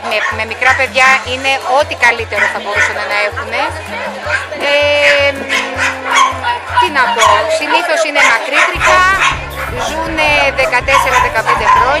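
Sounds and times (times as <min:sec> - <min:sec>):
small dogs yipping and barking: 0:00.0 - 0:00.9, 0:02.2 - 0:10.0, 0:10.6 - 0:12.0
background music with bass beat: 0:08.7 - 0:12.0.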